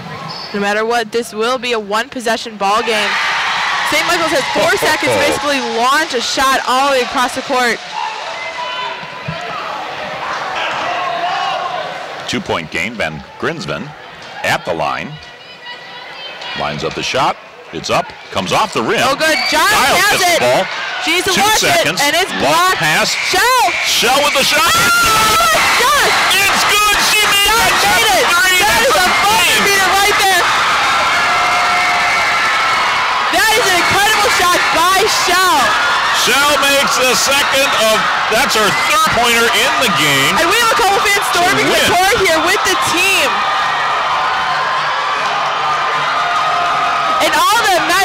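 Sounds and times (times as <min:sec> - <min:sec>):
crowd screaming and cheering: 0:02.8 - 0:12.2, 0:17.4 - 0:48.0
murmur of voices: 0:03.9 - 0:31.9, 0:32.9 - 0:48.0
high-pitched shrieks and whoops: 0:23.3 - 0:26.2.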